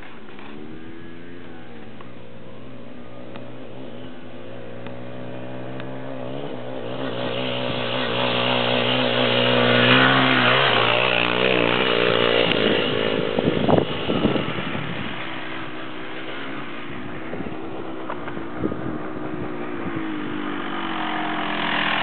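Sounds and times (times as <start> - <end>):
dirt bike engine passing by: 0.0 - 22.0.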